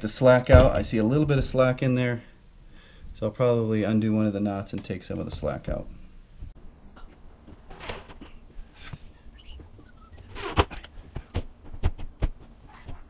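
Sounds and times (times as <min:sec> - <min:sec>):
brief high squeak: 0:07.8 - 0:08.2.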